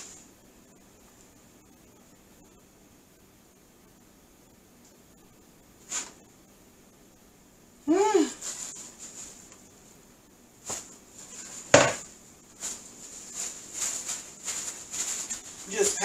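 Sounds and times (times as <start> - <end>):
faint high whine: 0.0 - 16.0
paper towel rustling: 8.2 - 10.0, 10.6 - 16.0.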